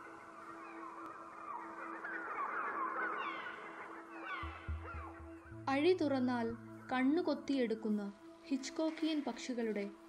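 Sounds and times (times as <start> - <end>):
flock of birds chirping: 0.0 - 5.6
low musical drone: 0.0 - 10.0.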